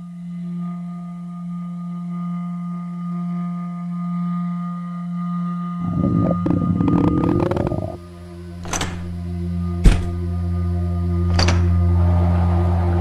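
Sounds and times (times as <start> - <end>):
low drone tone with overtones: 0.0 - 13.0.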